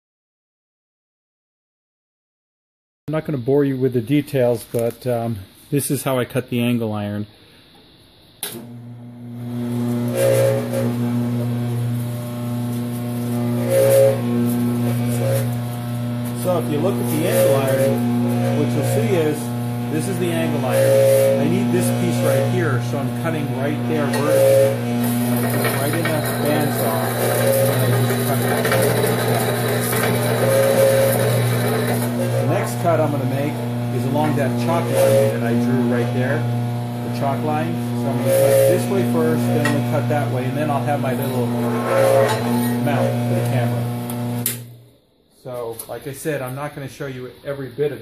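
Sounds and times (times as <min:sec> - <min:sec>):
bandsaw cutting steel: 0:08.6 - 0:44.8.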